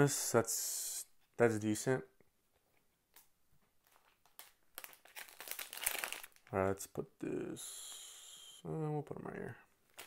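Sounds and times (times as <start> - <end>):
card pack wrapper crinkling: 3.8 - 6.6.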